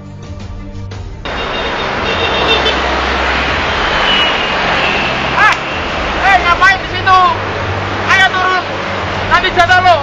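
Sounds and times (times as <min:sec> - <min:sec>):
music: 0:00.0 - 0:02.7
street traffic noise: 0:01.0 - 0:10.0.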